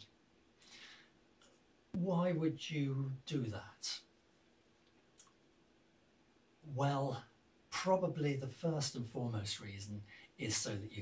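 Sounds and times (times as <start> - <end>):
man's soft in-breath: 0.6 - 1.2, 10.0 - 10.4
man speaking: 2.0 - 4.1, 6.6 - 11.0.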